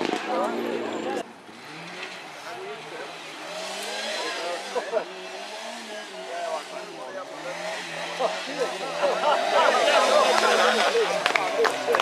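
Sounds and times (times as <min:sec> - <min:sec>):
rally car engine running hard: 0:00.9 - 0:12.0
spectators shouting: 0:07.4 - 0:12.0.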